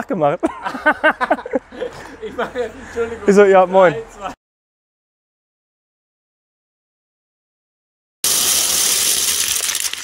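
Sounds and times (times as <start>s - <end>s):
plastic bricks clattering: 8.2s - 10.0s.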